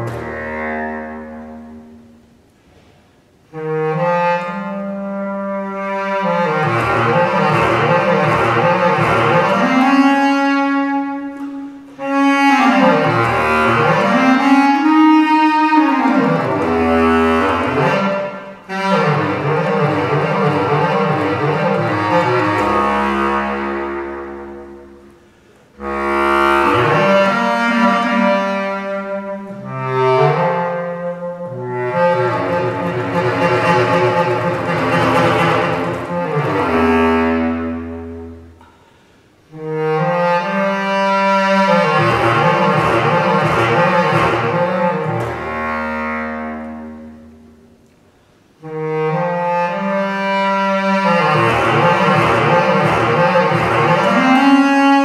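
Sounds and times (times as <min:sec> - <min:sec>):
bass clarinet playing: 0:00.0 - 0:02.5, 0:03.3 - 0:55.0
player breathing: 0:25.0 - 0:25.8, 0:38.6 - 0:39.4.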